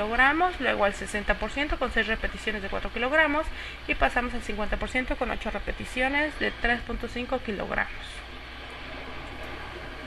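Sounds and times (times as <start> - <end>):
constant low hum: 0.0 - 10.0
steady background hiss: 0.0 - 10.0.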